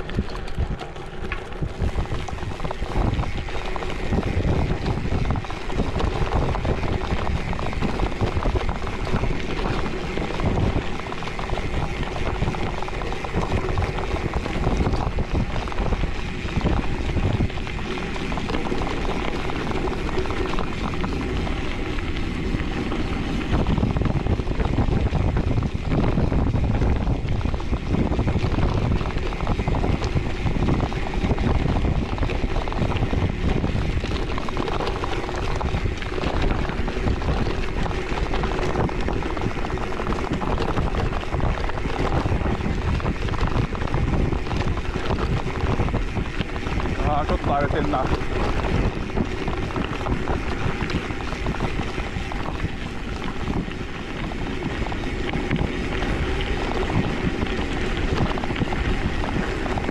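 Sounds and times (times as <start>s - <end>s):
bike tyres crunching over gravel: 0.0s - 59.9s
wind buffeting microphone: 0.0s - 59.9s.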